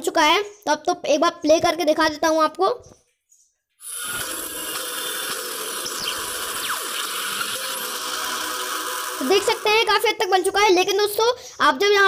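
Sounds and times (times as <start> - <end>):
electric hiss and buzz: 3.8 - 9.9.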